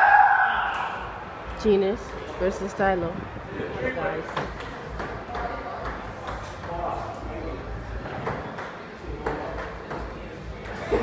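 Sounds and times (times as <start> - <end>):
table tennis ball hits: 4.3 - 6.8, 8.1 - 10.8.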